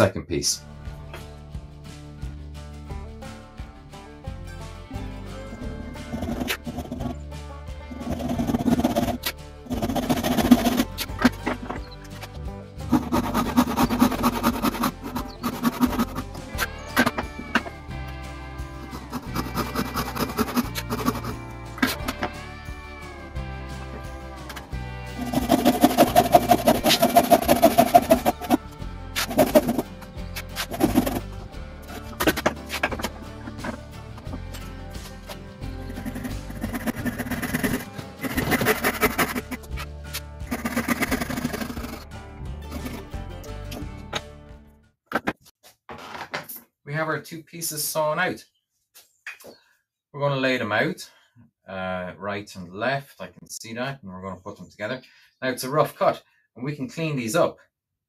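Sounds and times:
background music: 0:00.0 - 0:45.0
hand saw cutting timber: 0:06.0 - 0:07.2, 0:07.9 - 0:11.9, 0:12.8 - 0:17.6, 0:18.7 - 0:22.2, 0:25.1 - 0:42.0.

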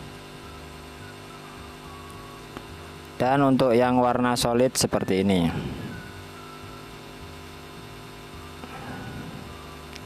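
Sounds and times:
electrical hum with faint hiss: 0:00.0 - 0:10.0.

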